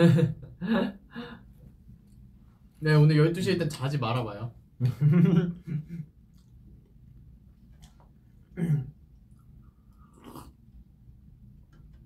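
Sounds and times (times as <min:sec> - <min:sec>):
faint slurp from a cup: 0:09.3 - 0:10.7.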